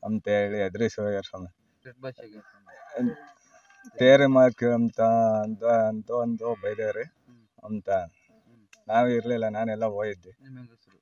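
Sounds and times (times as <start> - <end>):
man speaking: 0.0 - 3.2, 4.0 - 8.1, 8.9 - 10.5
rooster crowing: 2.4 - 4.0.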